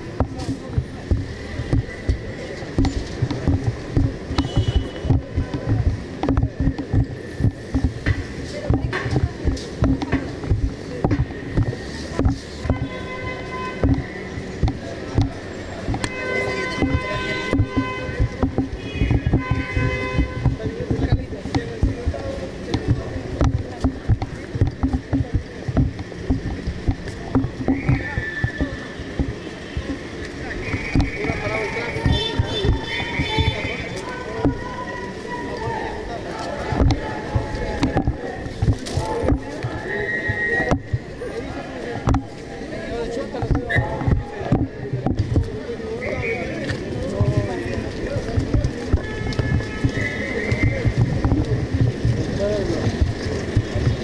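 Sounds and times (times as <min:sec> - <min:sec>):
low thumps: 0:00.0 - 0:35.1, 0:36.1 - 0:41.2, 0:43.1 - 0:45.8, 0:46.6 - 0:54.0
crowd talking: 0:00.0 - 0:54.0
rumbling street background: 0:00.0 - 0:54.0.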